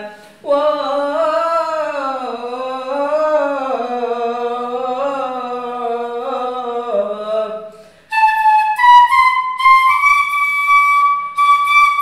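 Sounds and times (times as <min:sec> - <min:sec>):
flute holding a steady note: 0:08.1 - 0:12.0.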